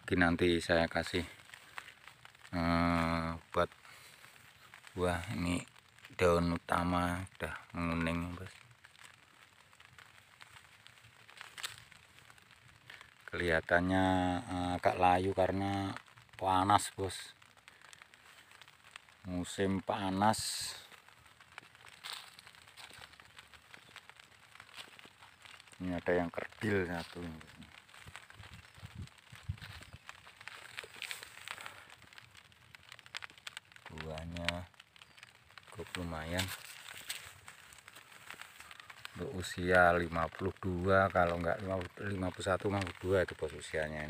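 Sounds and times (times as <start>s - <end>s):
leaves and plastic rustling: 0.0s - 44.0s.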